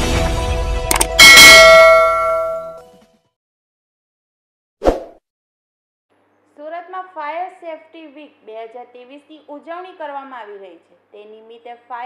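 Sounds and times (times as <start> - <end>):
struck bell-like chime: 1.1 - 2.8.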